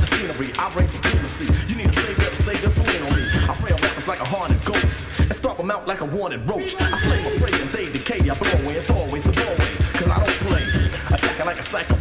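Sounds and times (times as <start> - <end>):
drum beat: 0.0 - 5.5, 6.6 - 12.0
person rapping: 0.0 - 12.0.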